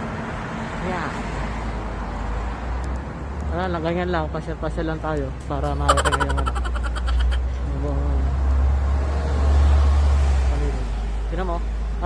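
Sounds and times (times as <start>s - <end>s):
bus passing by: 7.3s - 11.4s.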